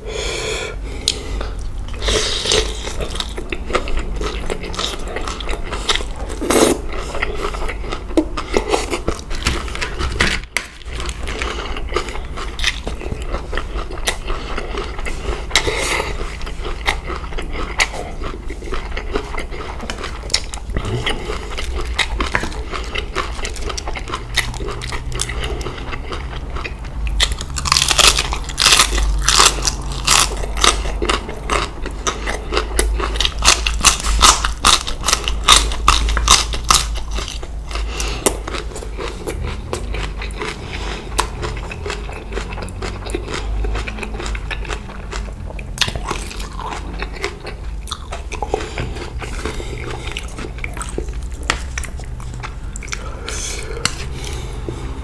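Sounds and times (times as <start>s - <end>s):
crunchy chewing: 1.0s - 55.0s.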